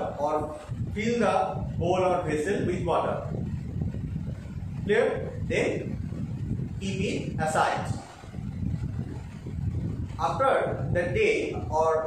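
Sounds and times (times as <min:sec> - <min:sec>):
low uneven rumble: 0:00.0 - 0:12.0.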